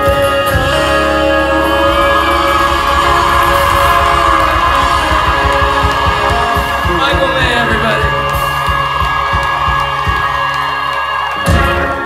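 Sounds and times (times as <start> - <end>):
crowd cheering: 0.0 - 12.0
live band playing: 0.0 - 12.0
drum beat: 1.6 - 12.0.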